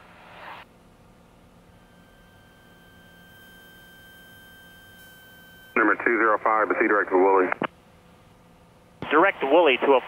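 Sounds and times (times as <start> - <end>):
high electronic tone: 1.6 - 7.1.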